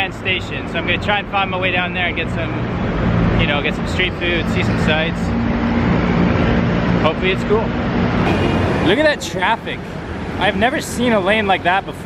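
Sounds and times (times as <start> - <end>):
cars and scooters passing: 0.0 - 12.0
steady engine hum: 0.0 - 12.0.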